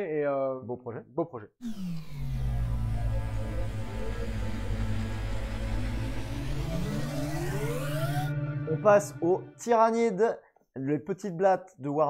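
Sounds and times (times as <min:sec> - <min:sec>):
deep rumbling drone: 0:01.6 - 0:09.6
tone rising in pitch: 0:01.6 - 0:09.8.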